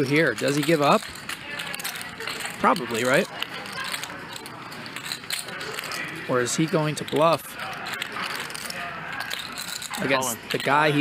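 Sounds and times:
poker chips clicking: 0.0 - 11.0.

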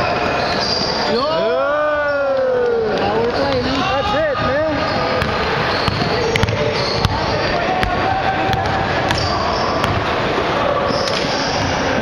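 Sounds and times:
sneaker squeaks: 0.0 - 1.4, 4.8 - 10.1, 10.8 - 12.0
players' voices echoing: 0.0 - 12.0
basketball bouncing on hardwood floor: 5.2 - 10.1.

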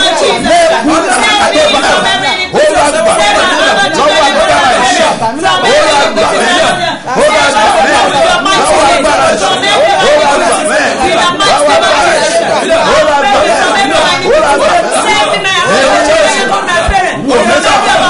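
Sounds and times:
voices praying aloud: 0.0 - 18.0.

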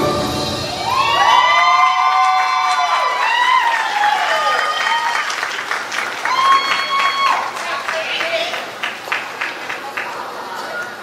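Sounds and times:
audience applauding and cheering: 0.6 - 11.0.

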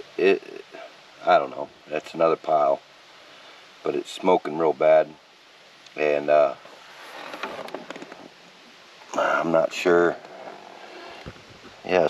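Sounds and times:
rustling handling noise: 6.6 - 8.5
small clicks and scrapes: 6.9 - 8.3, 10.2 - 11.6.

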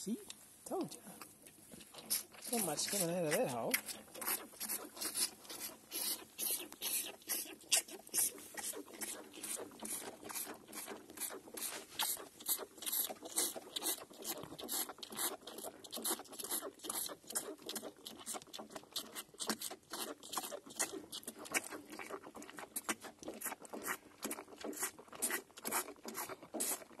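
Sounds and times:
calf suckling from teat: 0.0 - 27.0.

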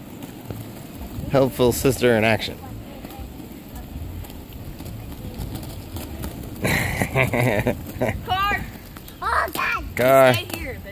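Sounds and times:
roller skate wheels on asphalt: 0.0 - 10.9
girls calling out: 8.2 - 10.7.

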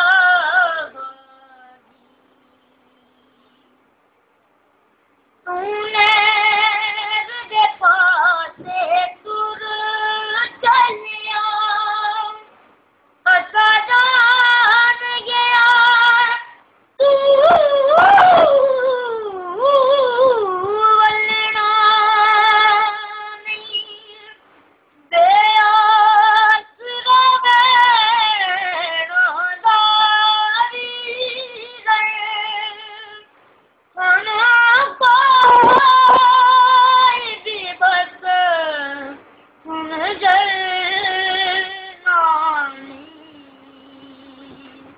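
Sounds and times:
boy singing unaccompanied: 0.0 - 1.8, 5.4 - 12.5, 13.2 - 24.4, 25.1 - 33.3, 34.0 - 44.9.

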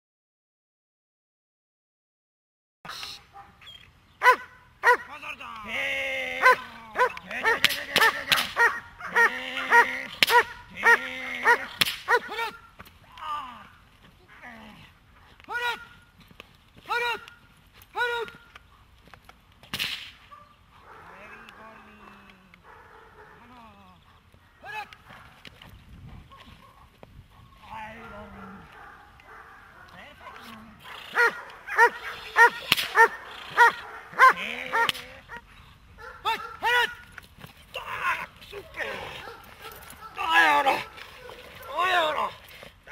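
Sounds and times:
dog barking: 3.3 - 3.6, 4.2 - 5.1, 6.4 - 12.6, 20.3 - 23.5, 26.1 - 35.4, 36.0 - 37.0, 38.8 - 41.9
dog crying: 6.4 - 12.6, 30.2 - 36.6, 38.6 - 41.9
sharp cracks: 7.0 - 8.7, 10.1 - 10.6, 11.7 - 12.2, 18.2 - 20.3, 32.5 - 33.7.

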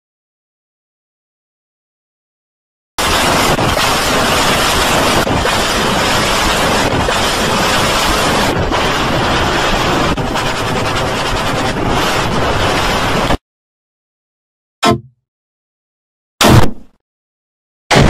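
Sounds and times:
harsh distorted noise: 3.0 - 13.4.

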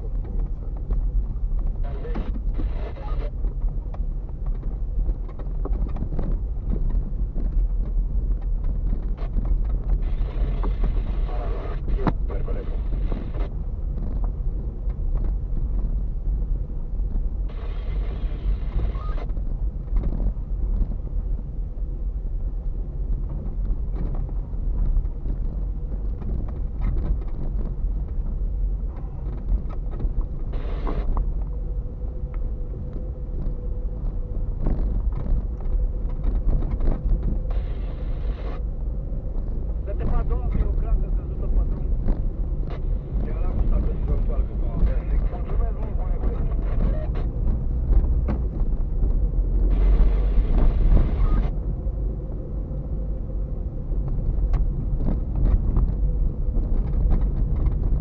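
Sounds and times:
tyre and engine rumble: 0.0 - 58.0
car knocks and rattles: 3.4 - 11.0, 13.1 - 17.4, 19.3 - 21.6, 22.9 - 31.6, 32.3 - 37.6, 39.2 - 49.8, 53.8 - 58.0.

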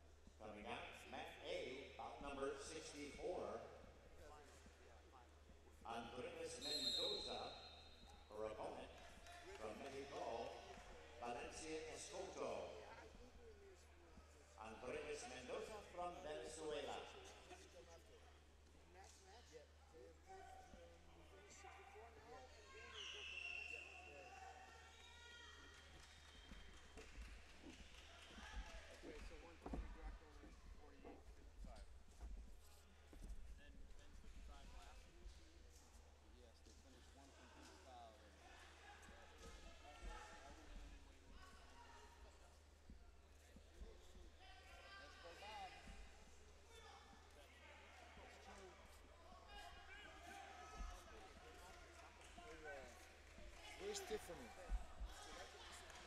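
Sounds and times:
distant people talking: 6.2 - 31.8.

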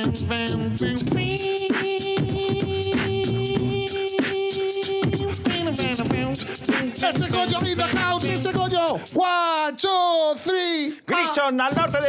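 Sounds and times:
person beatboxing into a microphone: 0.0 - 9.4, 10.6 - 12.0.

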